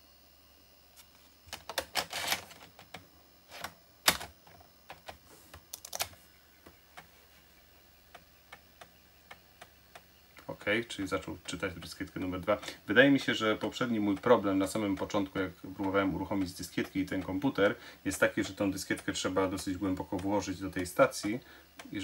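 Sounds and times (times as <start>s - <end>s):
floppy disk clicking into drive: 1.5s - 7.1s, 8.0s - 22.0s
floppy drive ticking: 7.7s - 22.0s.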